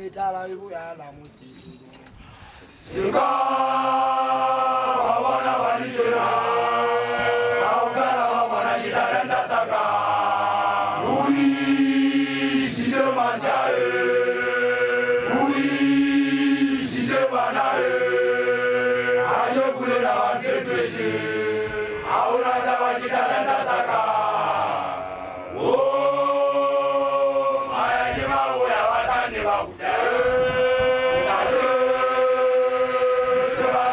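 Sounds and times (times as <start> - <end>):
male group chanting in chorus: 2.9 - 33.9.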